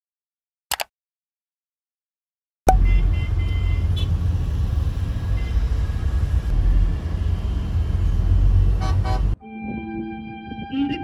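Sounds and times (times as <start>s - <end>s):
car engine rumble and road noise: 2.7s - 9.4s.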